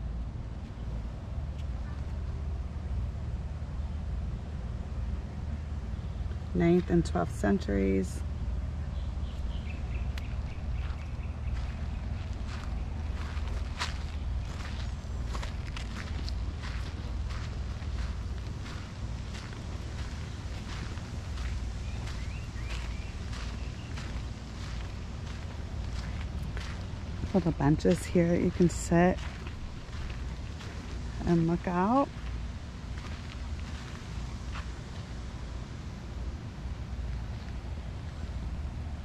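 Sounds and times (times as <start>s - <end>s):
footsteps on garden path: 9.3s - 35.4s.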